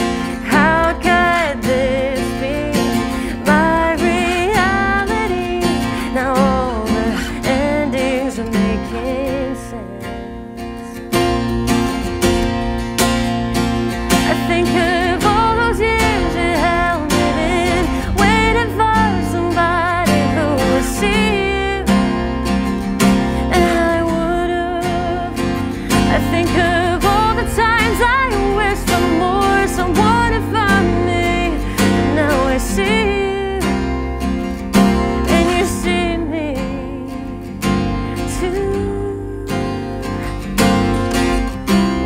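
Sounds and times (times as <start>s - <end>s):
woman singing: 0.0s - 11.6s, 13.9s - 42.0s
acoustic guitar: 0.0s - 42.0s.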